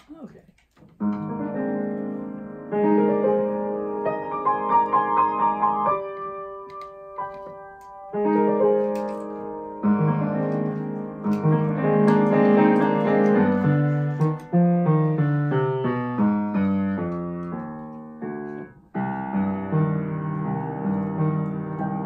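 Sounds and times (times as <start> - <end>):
solo grand piano: 1.0 - 22.0.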